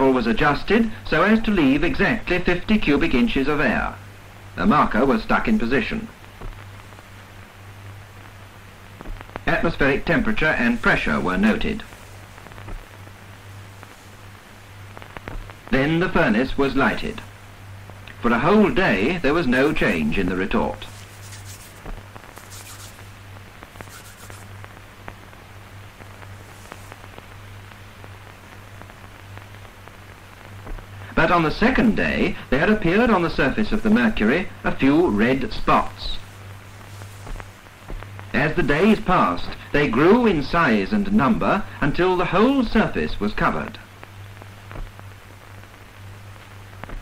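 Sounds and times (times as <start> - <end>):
low mains hum: 0.0 - 47.0
steady hiss: 0.0 - 47.0
crackling clicks: 5.2 - 18.4, 19.0 - 32.0, 32.7 - 39.8, 43.7 - 47.0.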